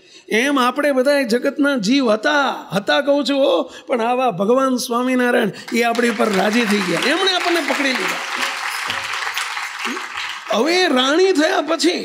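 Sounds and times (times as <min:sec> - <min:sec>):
audience applauding: 0:05.7 - 0:11.9.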